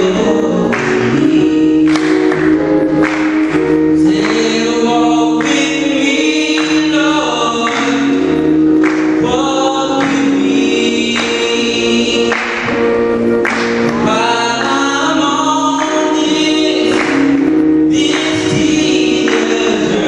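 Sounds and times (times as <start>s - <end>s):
man singing gospel song: 0.0s - 20.0s
sustained keyboard accompaniment: 0.0s - 20.0s.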